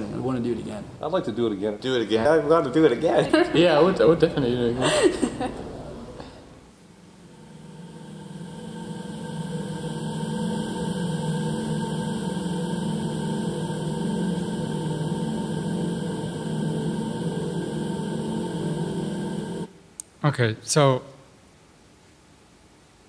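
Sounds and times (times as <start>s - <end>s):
electronic ambient drone: 2.6s - 19.9s.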